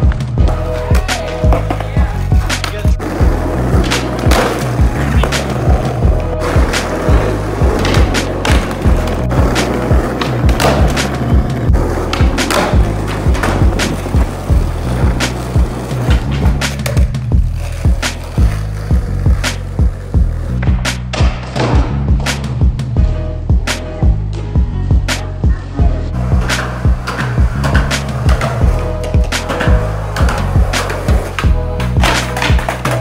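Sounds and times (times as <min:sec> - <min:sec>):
skateboard wheels rolling on asphalt: 0:00.0 - 0:20.6, 0:26.2 - 0:33.0
music with heavy bass beat: 0:00.0 - 0:33.0
skateboard clacks: 0:00.1 - 0:22.6, 0:26.4 - 0:33.0.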